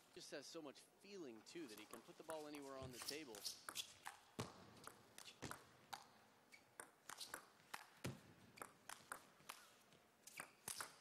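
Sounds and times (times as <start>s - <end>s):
table tennis ball clicks: 3.3s - 9.6s.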